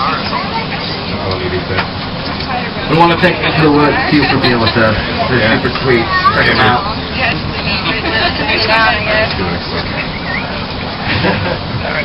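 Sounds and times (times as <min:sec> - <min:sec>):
streetcar running rumble: 0:00.0 - 0:12.0
voices talking: 0:00.0 - 0:12.0.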